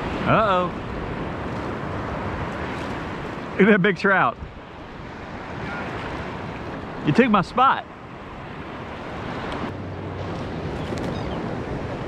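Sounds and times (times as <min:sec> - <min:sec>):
wind on microphone: 0:00.0 - 0:03.6, 0:04.3 - 0:07.2, 0:07.9 - 0:12.0
small waves washing: 0:00.0 - 0:12.0.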